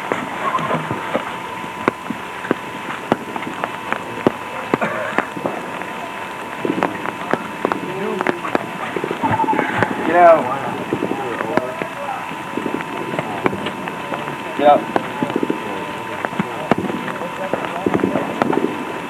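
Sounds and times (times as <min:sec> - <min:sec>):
high-pitched hum: 0:00.0 - 0:19.0
sharp clicks and crackles: 0:00.0 - 0:19.0
faint indistinct voices: 0:03.5 - 0:19.0.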